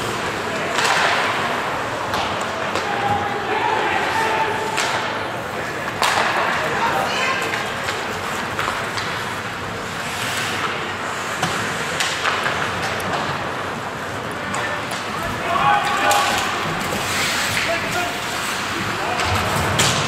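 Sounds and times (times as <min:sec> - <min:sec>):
players shouting: 0:00.0 - 0:07.7, 0:14.5 - 0:20.0
hockey sticks and puck clacking: 0:00.0 - 0:20.0.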